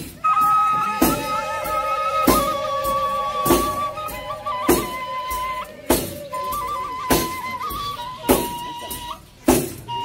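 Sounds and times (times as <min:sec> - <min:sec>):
high wind instrument melody: 0:00.0 - 0:10.0.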